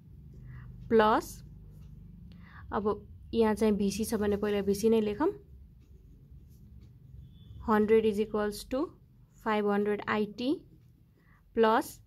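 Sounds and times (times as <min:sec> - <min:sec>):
person speaking: 0:02.8 - 0:05.5.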